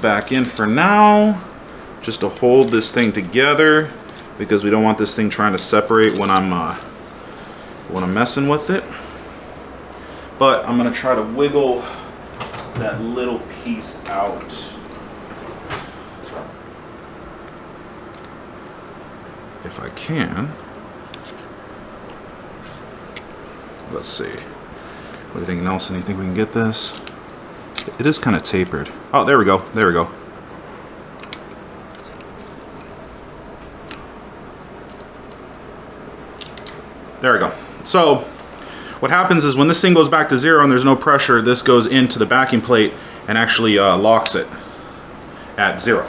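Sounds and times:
room tone: 0.0 - 46.0
steady low hum: 0.0 - 46.0.

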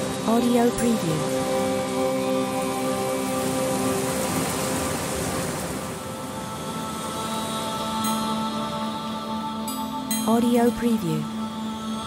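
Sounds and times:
torrential rain: 0.0 - 9.8
slow background music: 0.0 - 12.0.

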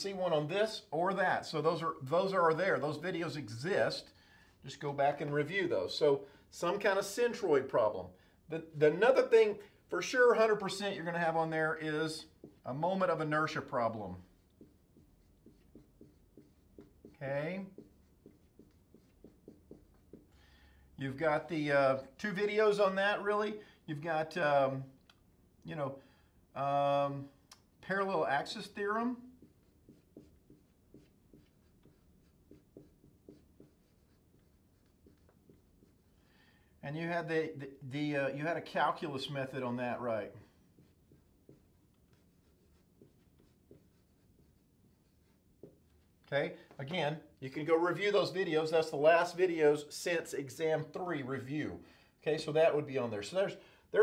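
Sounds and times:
marker squeaking on whiteboard: 13.2 - 20.3, 28.5 - 36.2, 40.5 - 46.3.

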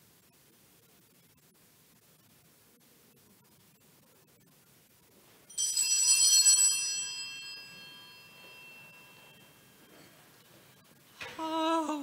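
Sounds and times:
small bell ringing: 5.5 - 10.4.

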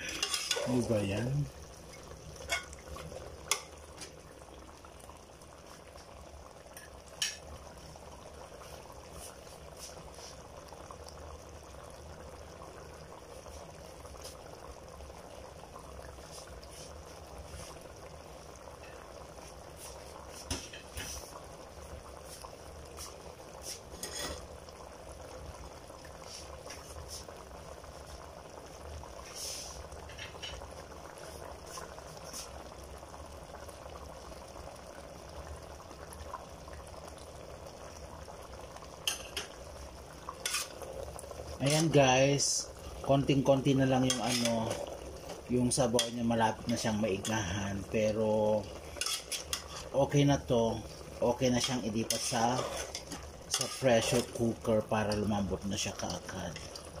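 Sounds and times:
broth boiling in a pot: 0.0 - 57.0.

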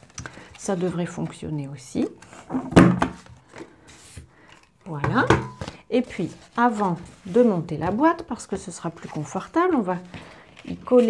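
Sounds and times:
paper handling: 5.5 - 11.0.

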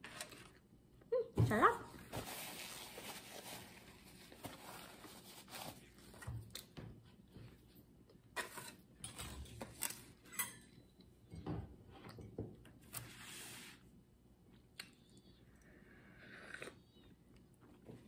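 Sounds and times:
paper napkin rustling: 2.0 - 6.1.

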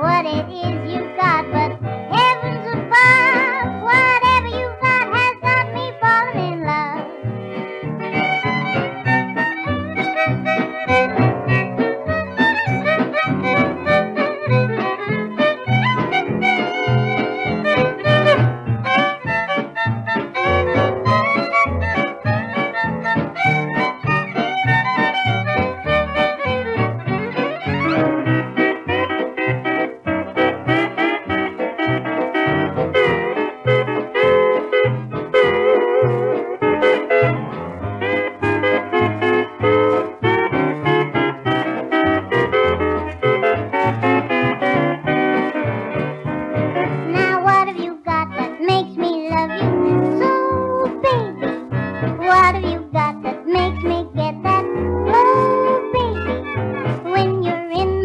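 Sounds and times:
string band with guitar lead: 0.0 - 58.0.

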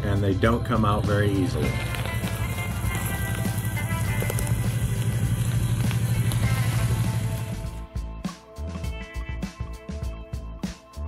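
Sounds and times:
background music: 0.0 - 11.0
engine running with fast pulse: 1.7 - 7.8.

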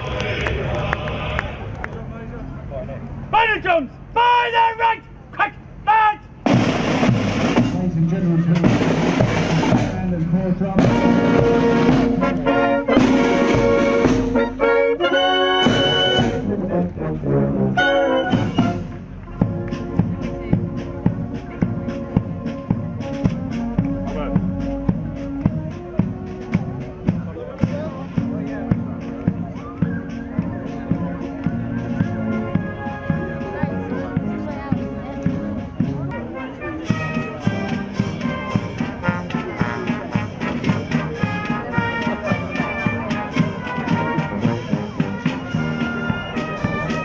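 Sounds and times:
military marching band: 3.2 - 47.0
drum rolls: 6.4 - 36.2, 36.8 - 47.0.

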